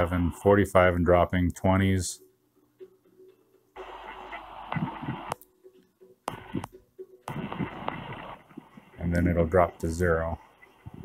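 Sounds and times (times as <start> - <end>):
muffled hissy camera audio: 3.7 - 5.5, 6.3 - 11.0.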